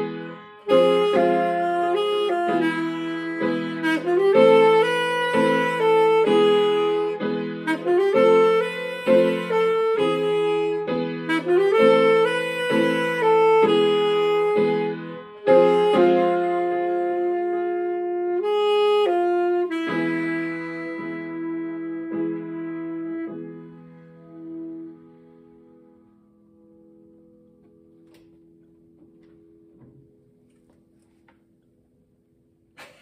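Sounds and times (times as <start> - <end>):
alto saxophone: 0.0 - 26.1
piano: 0.0 - 33.0.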